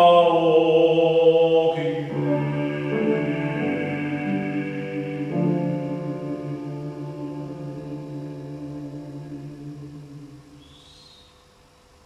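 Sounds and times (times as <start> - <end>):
piano chord ringing: 1.8 - 10.6.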